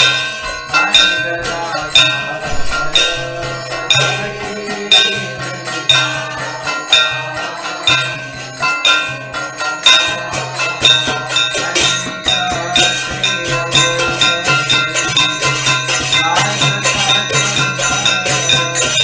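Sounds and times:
metal hand cymbals clashing: 0.0 - 19.0
hand drum playing: 2.4 - 5.0.

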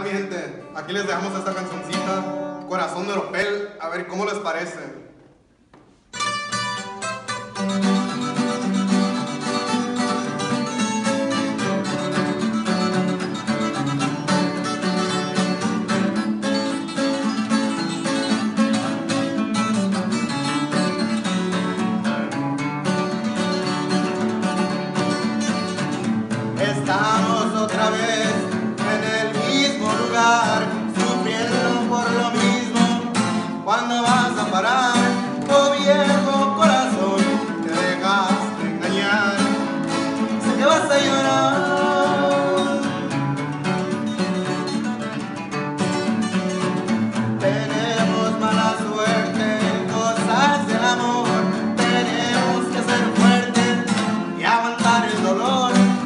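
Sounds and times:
acoustic guitars playing: 0.0 - 56.0
people singing: 26.6 - 33.2, 34.0 - 43.2, 47.4 - 56.0.

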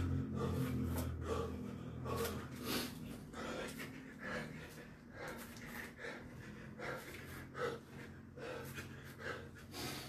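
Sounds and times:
man's sharp forced breaths: 0.0 - 10.0.

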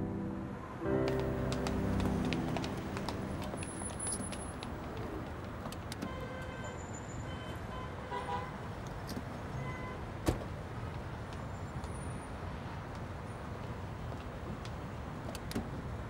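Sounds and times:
street traffic noise: 0.0 - 16.0.

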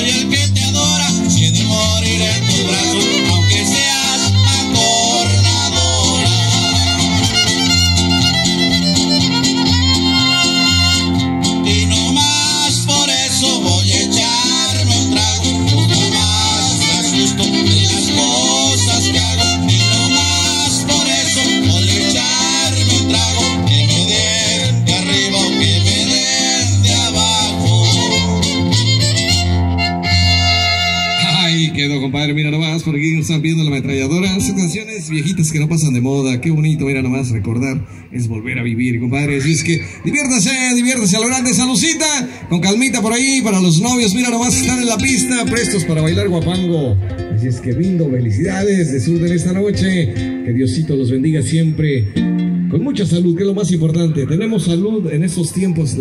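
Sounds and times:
fiddle melody: 0.0 - 31.8
strummed guitars: 0.0 - 35.9, 41.0 - 54.7
low guitar notes: 0.0 - 37.6, 39.0 - 56.0
man speaking: 2.3 - 3.8, 31.2 - 56.0.

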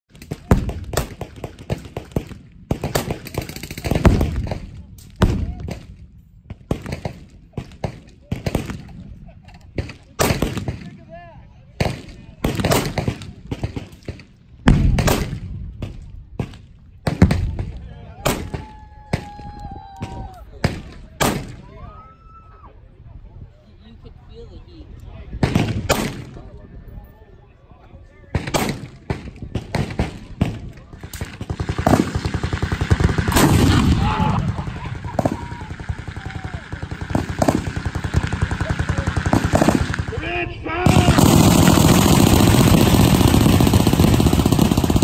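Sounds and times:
automatic gunfire: 29.6 - 40.2, 40.8 - 45.0.

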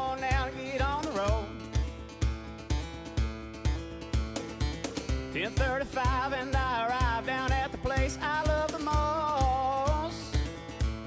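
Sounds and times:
country song with acoustic guitar: 0.0 - 11.0.

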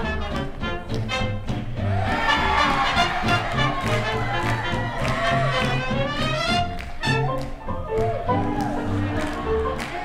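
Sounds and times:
swing jazz with brass: 0.0 - 10.0.

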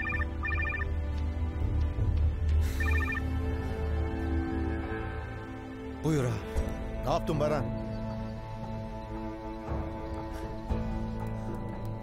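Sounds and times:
mobile phone trilling rings: 0.0 - 0.9, 2.8 - 3.3
background music with low drone: 0.0 - 12.0.

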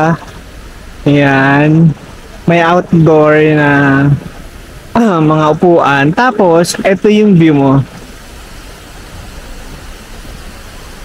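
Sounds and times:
outdoor hiss: 0.0 - 11.0.

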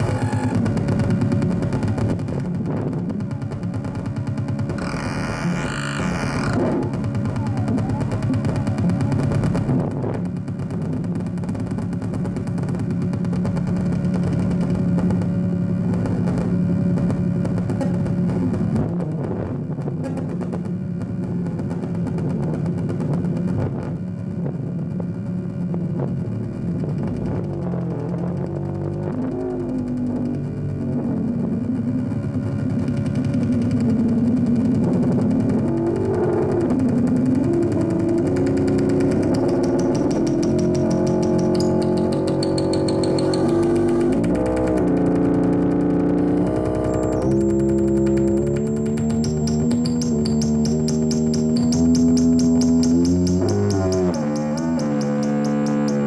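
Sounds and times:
amplifier feedback: 0.0 - 2.5, 4.7 - 10.0, 35.5 - 56.0
synthesizer drone: 0.0 - 20.6, 25.2 - 56.0
thin high tone: 39.0 - 44.8, 46.3 - 56.0.

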